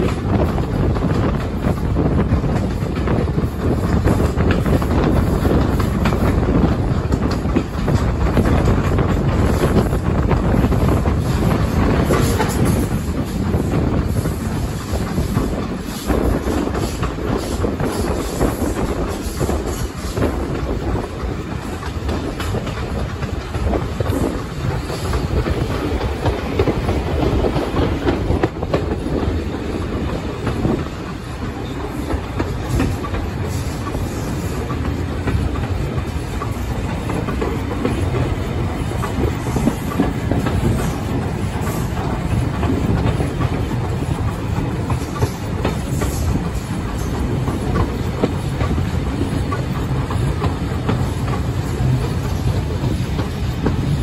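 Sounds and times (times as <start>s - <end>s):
train wheels rumbling on track: 0.0s - 54.0s.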